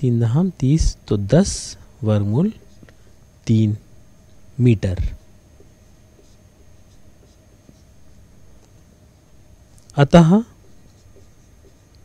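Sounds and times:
marker writing on whiteboard: 2.4 - 3.2, 4.9 - 12.0.

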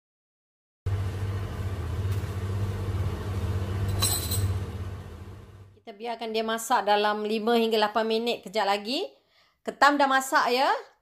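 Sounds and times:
kitchen appliance humming: 0.9 - 5.8
high clink: 3.9 - 4.6.

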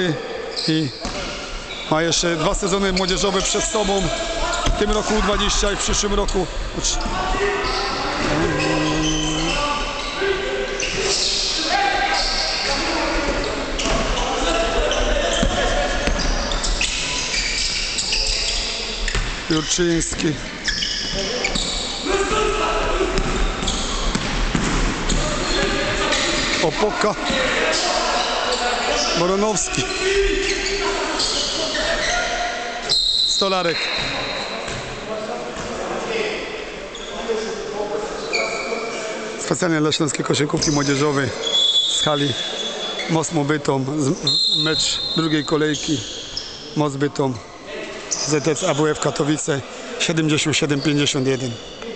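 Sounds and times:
voices echoing in hall: 0.0 - 51.9
sneakers squeaking on court: 0.5 - 5.0, 6.6 - 22.1, 23.1 - 26.6, 29.9 - 35.0, 44.2 - 46.8, 50.8 - 51.9
basketball bouncing: 15.4 - 16.3, 23.2 - 25.7
referee's whistle blast: 41.4 - 43.0, 44.2 - 46.2.

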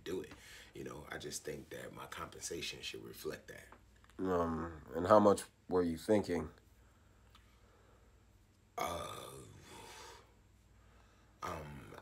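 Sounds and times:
man saying uh: 4.2 - 6.4, 11.4 - 12.0.

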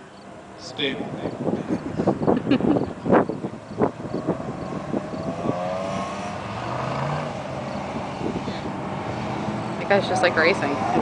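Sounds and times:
car engine revving: 3.0 - 11.0.

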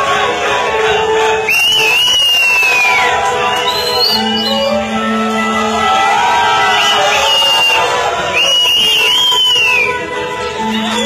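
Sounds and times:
show music: 0.0 - 11.0
person whistling: 1.4 - 5.0, 6.7 - 10.0, 10.6 - 11.0.

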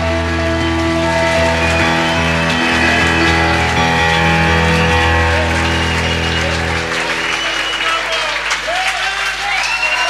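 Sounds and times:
live rock band playing chords: 0.0 - 8.8.

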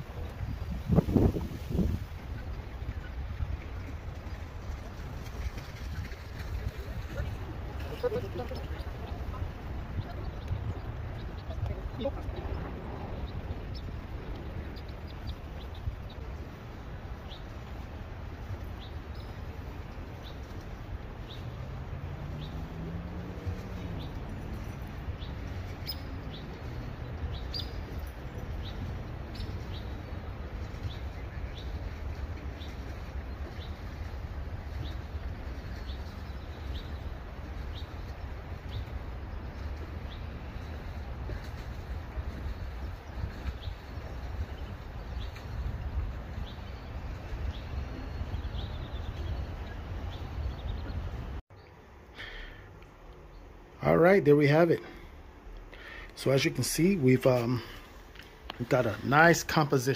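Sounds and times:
low rumble: 0.0 - 17.3.

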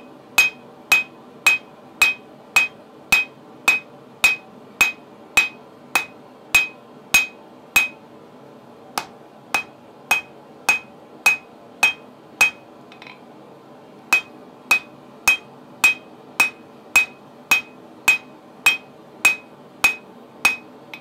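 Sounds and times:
hammer blows on anvil: 0.4 - 8.0, 9.0 - 13.2, 14.1 - 21.0.

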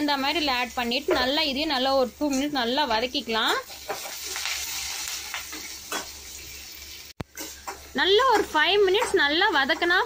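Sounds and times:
onions sizzling in hot oil: 0.0 - 10.0.

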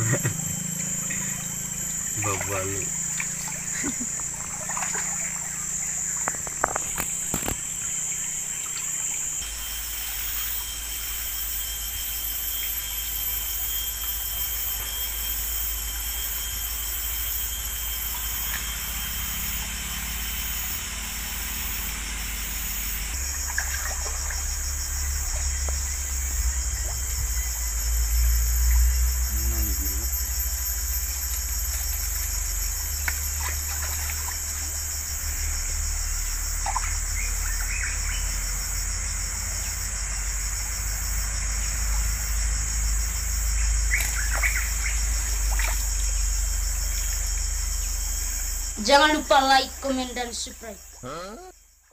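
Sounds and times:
insects buzzing: 0.0 - 51.9.

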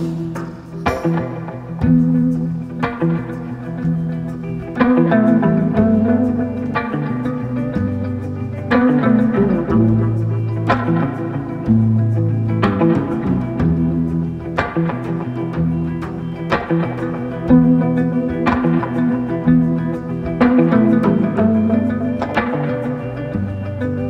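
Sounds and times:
plucked guitar music: 0.0 - 24.0.

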